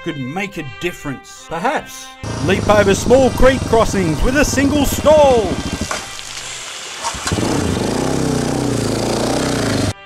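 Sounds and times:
dirt bike engine running: 2.2 - 10.0.

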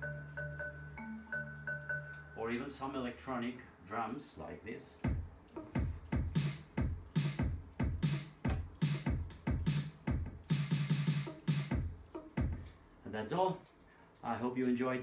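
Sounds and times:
electronic kick drum thumps: 5.0 - 12.8
pitched tom notes: 5.1 - 12.7
snare or cymbal hits: 5.8 - 12.6.

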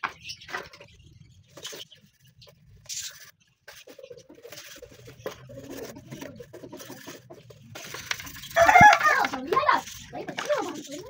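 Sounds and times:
rooster crowing: 8.6 - 9.2.

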